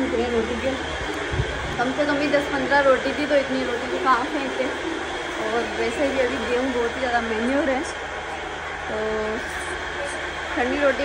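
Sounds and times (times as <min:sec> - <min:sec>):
electric flour mill running: 0:00.0 - 0:11.0.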